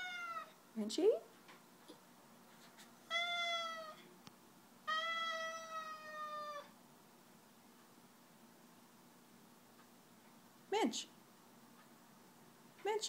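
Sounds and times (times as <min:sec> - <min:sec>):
cat meowing: 0:00.0 - 0:00.6, 0:03.1 - 0:04.0, 0:04.8 - 0:06.8.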